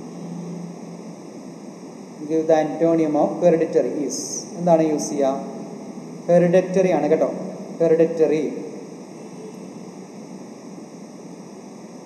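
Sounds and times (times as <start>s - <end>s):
microphone background hiss: 0.0s - 12.0s.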